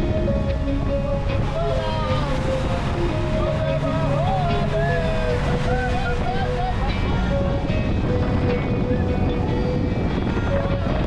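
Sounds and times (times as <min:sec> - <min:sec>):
motorboat engine at speed: 0:00.0 - 0:11.0
rushing wake and wind: 0:00.0 - 0:11.0
song with sung melody: 0:00.0 - 0:11.0.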